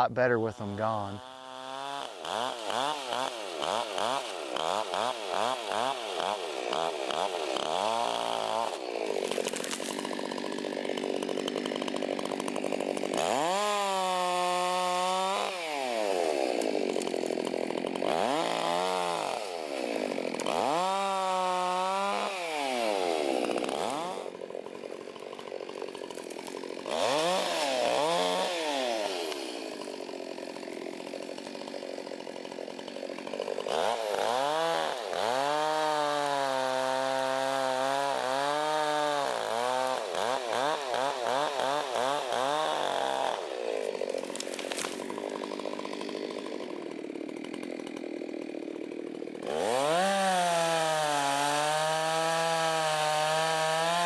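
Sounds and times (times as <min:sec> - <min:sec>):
chainsaw revving and cutting: 0:00.0 - 0:54.0.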